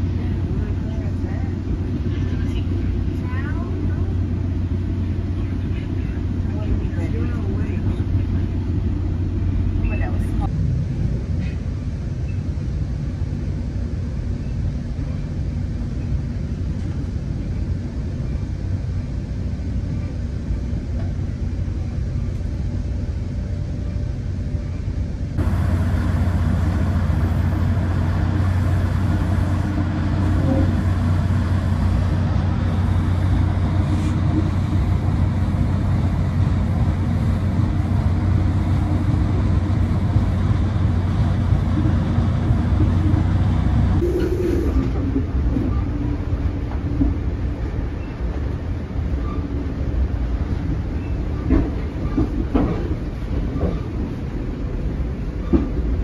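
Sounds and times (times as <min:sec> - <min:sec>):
train rumble and hum: 0:00.0 - 0:56.0
deep diesel drone: 0:20.3 - 0:45.4.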